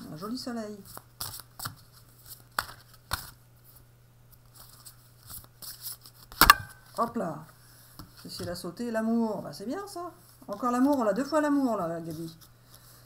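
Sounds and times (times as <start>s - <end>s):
cards rustling and flicking: 0.9s - 3.4s, 4.3s - 7.0s.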